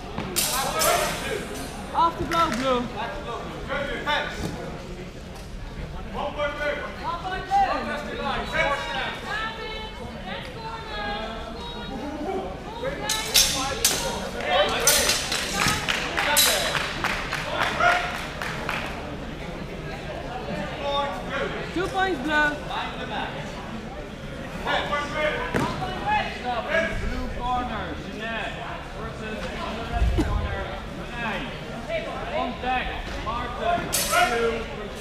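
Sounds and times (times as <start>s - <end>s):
chatter of voices in a hall: 0.0s - 35.0s
steel swords clashing: 13.1s - 14.2s.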